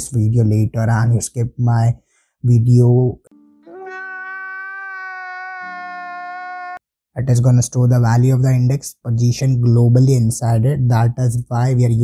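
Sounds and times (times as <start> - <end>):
man wailing: 3.7 - 6.8.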